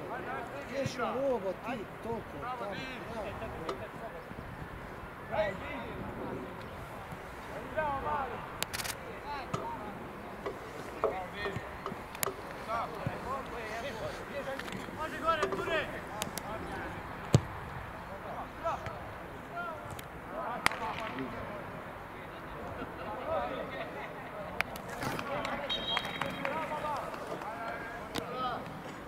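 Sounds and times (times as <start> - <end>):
ball being kicked: 17.3 - 17.5.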